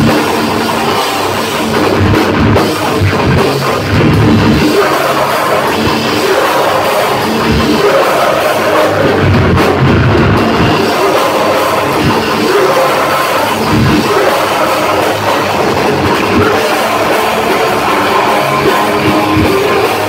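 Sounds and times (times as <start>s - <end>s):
distorted electric guitars: 0.0s - 20.0s
drum kit: 0.0s - 20.0s
vocalist singing: 0.0s - 20.0s.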